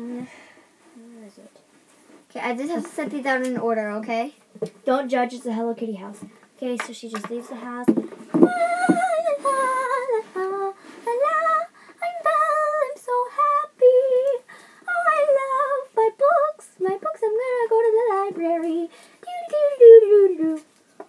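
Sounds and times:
girl singing unaccompanied: 0:05.3 - 0:20.8.

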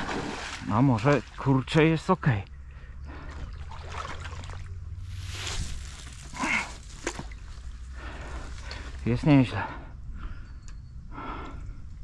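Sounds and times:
water splashing: 0:00.0 - 0:01.5, 0:03.4 - 0:07.5
steady low rumble: 0:01.5 - 0:12.0.

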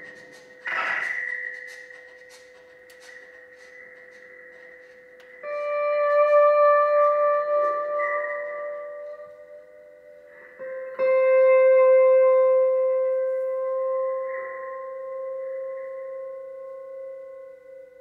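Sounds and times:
pedal steel guitar: 0:05.1 - 0:18.0.

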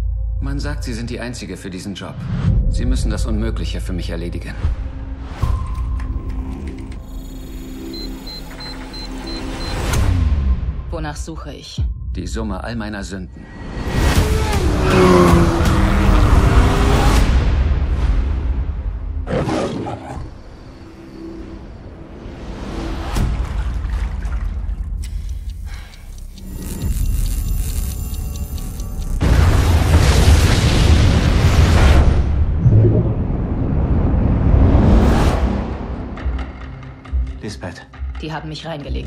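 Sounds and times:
deep rumbling drone: 0:24.9 - 0:39.0
faint rapid ticking: 0:25.0 - 0:29.2
loud whooshing hit: 0:29.4 - 0:35.9.

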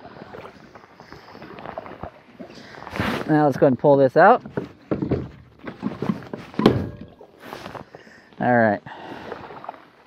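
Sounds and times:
knocks and clunks: 0:04.4 - 0:07.3
heavy thunk: 0:04.5 - 0:05.5, 0:06.5 - 0:07.2.

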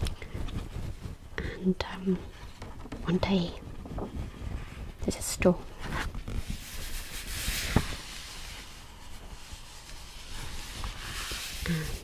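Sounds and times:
fingers rustling paper page: 0:00.0 - 0:01.4, 0:02.3 - 0:12.0.

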